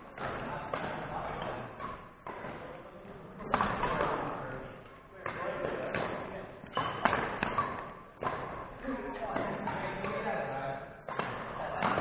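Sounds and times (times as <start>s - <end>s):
racket hitting shuttlecock: 3.4s - 10.2s, 11.0s - 12.0s.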